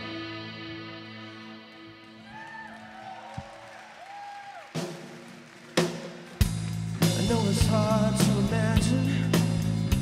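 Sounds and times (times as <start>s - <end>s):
live rock band: 0.0s - 2.4s, 4.7s - 10.0s.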